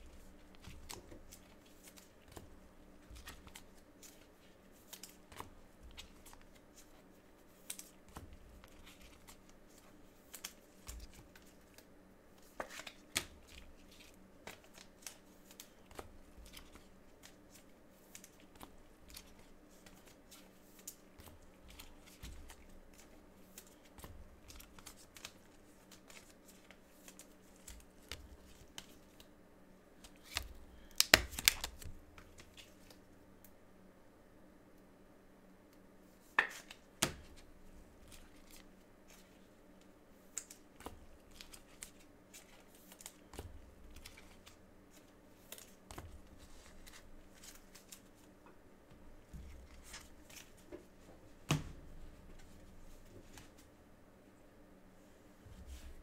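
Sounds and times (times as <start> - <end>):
faint steady hum: 0.0 - 56.0
cards and packaging clicking: 30.0 - 33.0.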